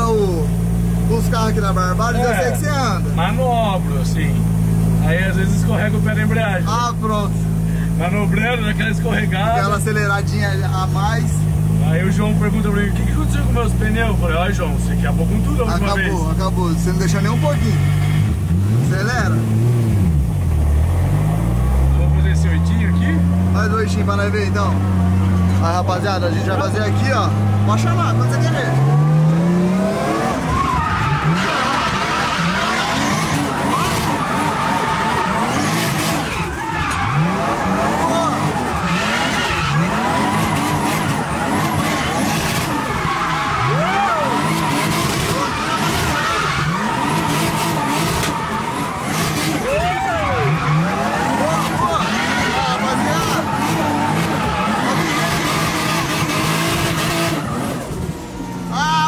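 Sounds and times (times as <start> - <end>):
car engine revving: 0.0 - 59.0
tyres squealing: 22.2 - 59.0.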